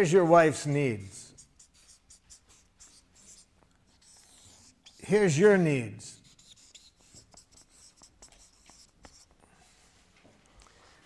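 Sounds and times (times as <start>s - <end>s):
marker writing on paper: 0.4s - 9.9s.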